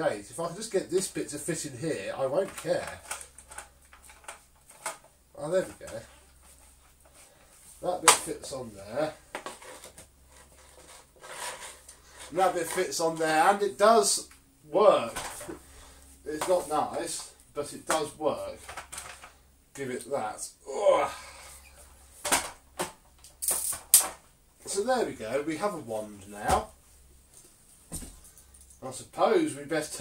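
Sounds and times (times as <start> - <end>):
faint rubbing: 5.4 - 14.2.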